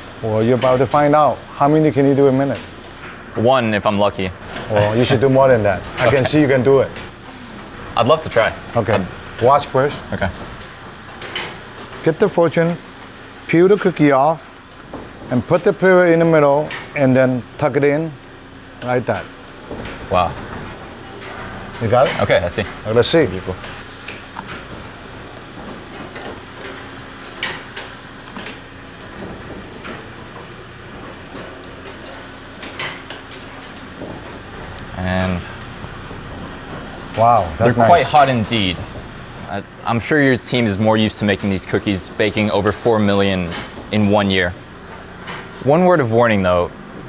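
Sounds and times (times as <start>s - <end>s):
machine running: 0.0s - 47.0s.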